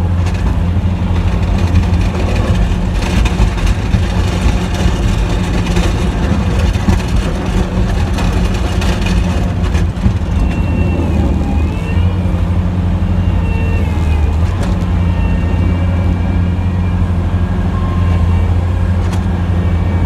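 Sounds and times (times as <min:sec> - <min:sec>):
plow blade scraping snow: 0:00.0 - 0:20.0
truck engine running: 0:00.0 - 0:20.0.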